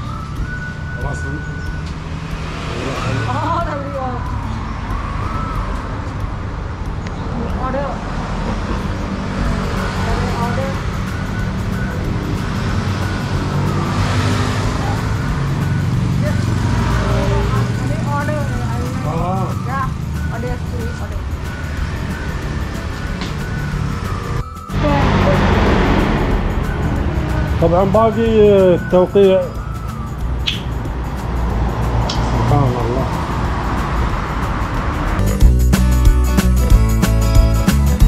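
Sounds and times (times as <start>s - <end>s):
music: 0.0s - 38.0s
indistinct voices: 1.0s - 35.1s.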